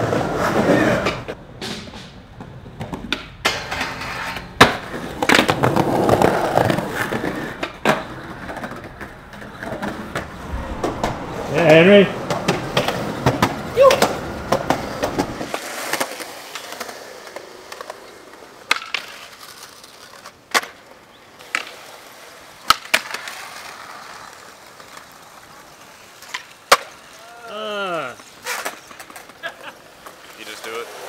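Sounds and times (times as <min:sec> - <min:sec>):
skateboard wheels rolling on concrete: 0:00.0 - 0:31.0
skateboard clacking on concrete: 0:00.4 - 0:10.2, 0:12.8 - 0:27.2, 0:28.2 - 0:31.0.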